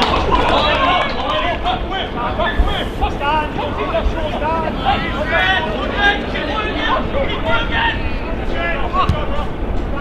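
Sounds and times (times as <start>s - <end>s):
men shouting and calling out: 0.0s - 10.0s.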